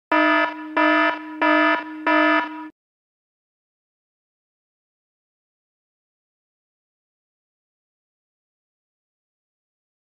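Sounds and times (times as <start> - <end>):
buzzy electronic alarm pulses: 0.1 - 2.7.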